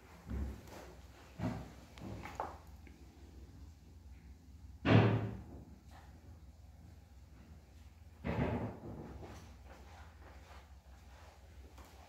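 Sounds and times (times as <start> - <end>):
loud thud: 4.8 - 5.6.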